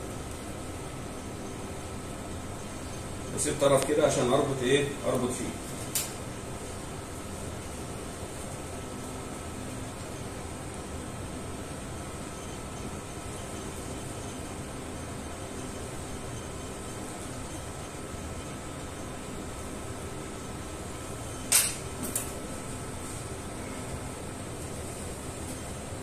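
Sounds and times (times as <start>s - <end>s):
ventilation hiss and hum: 0.0s - 26.0s.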